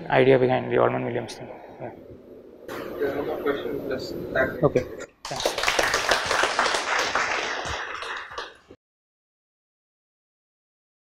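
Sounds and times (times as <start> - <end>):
audience applauding: 5.2 - 8.8.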